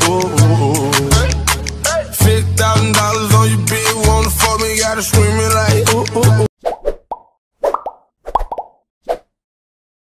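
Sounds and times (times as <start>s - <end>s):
song: 0.0s - 6.5s
cartoon plop sound effects: 6.7s - 9.2s.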